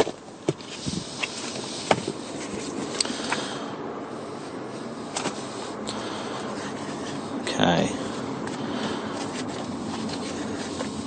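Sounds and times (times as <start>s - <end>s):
paper pages rustling: 0.0s - 3.4s, 8.0s - 11.0s
steady background hum: 0.0s - 11.0s.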